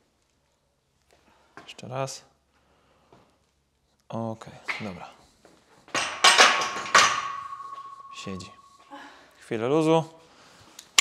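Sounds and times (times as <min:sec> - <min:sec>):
metal bar clanking on hooks: 0:06.0 - 0:08.8
metal ringing tone: 0:06.0 - 0:09.2.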